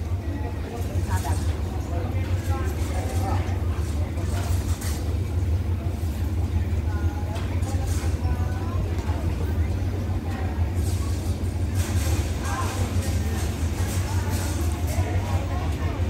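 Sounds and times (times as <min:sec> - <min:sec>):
locomotive idling: 0:00.0 - 0:16.0
people's voices: 0:00.0 - 0:16.0.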